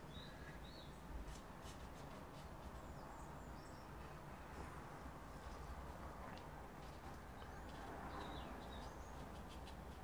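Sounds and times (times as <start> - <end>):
faint bird chirps: 0.0 - 1.1.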